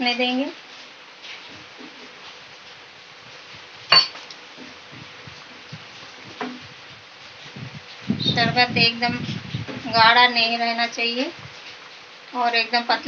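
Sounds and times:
spoon clinking against pot: 0:03.9 - 0:04.2.

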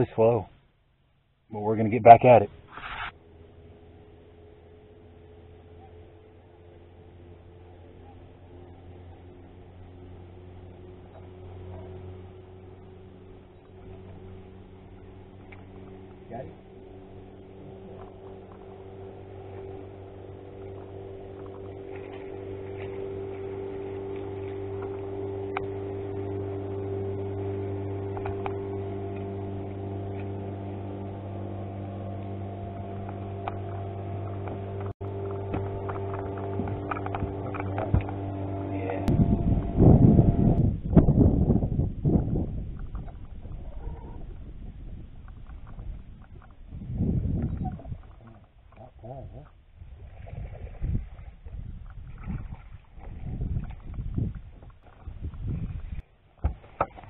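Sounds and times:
irregular bumps and buffeting: 0:00.0 - 0:57.0
electric motor humming: 0:02.6 - 0:41.7.

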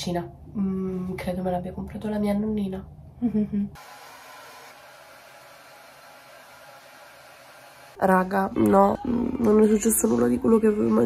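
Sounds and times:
hair dryer blowing air: 0:03.8 - 0:08.0.

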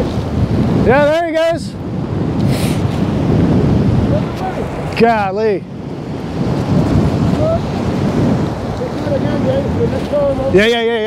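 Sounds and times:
surf washing across sand: 0:00.0 - 0:11.0
wind buffeting microphone: 0:00.0 - 0:11.0.

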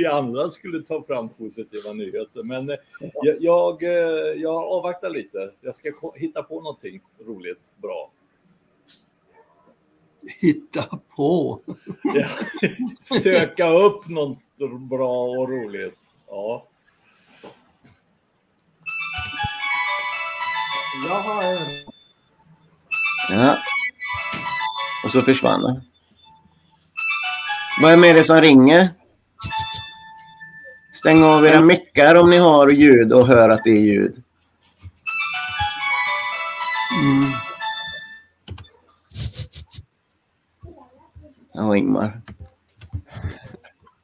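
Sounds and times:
phone ringtone melody: 0:18.9 - 0:28.6, 0:29.4 - 0:31.7, 0:35.1 - 0:38.4.

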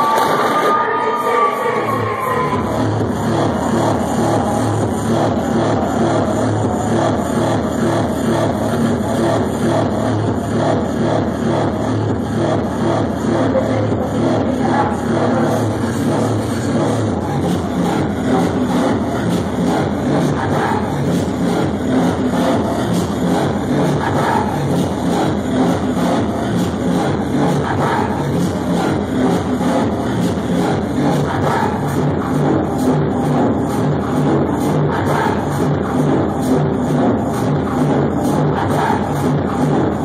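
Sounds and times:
electronic dance music: 0:00.0 - 0:40.0.

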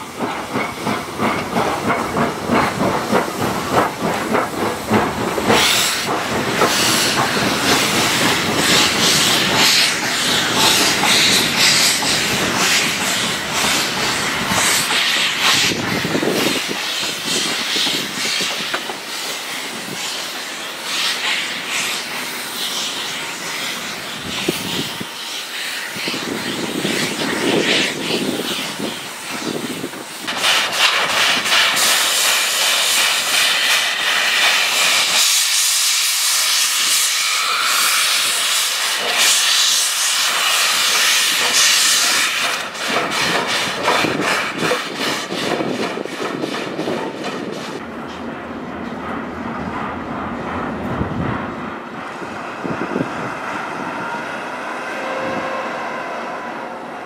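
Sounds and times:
steam locomotive hissing steam: 0:00.0 - 0:48.2
steam locomotive exhaust beats: 0:00.0 - 0:57.0.

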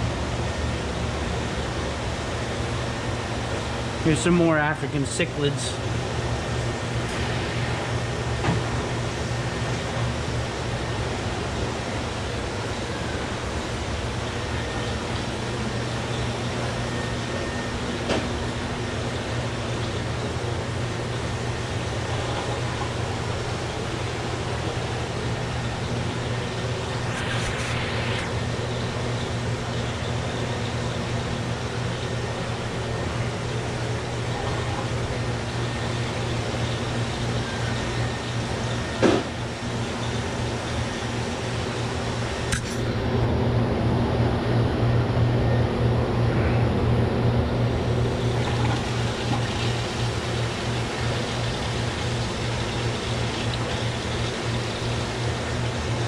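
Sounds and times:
aquarium air pumps humming: 0:00.0 - 0:56.0
constant low hum: 0:00.0 - 0:56.0.

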